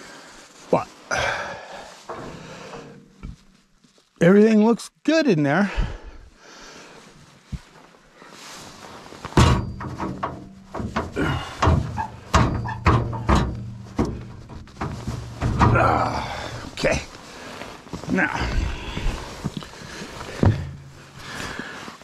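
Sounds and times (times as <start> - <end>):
metal knocks and clanks: 2.1 - 3.5, 9.3 - 16.9, 20.2 - 21.3
steel door slamming: 9.4 - 16.3.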